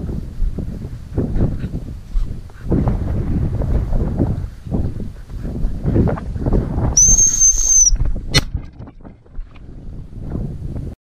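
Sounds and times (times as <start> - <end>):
wind buffeting microphone: 0.0 - 11.0
high-pitched dog whistle blast: 7.0 - 8.0.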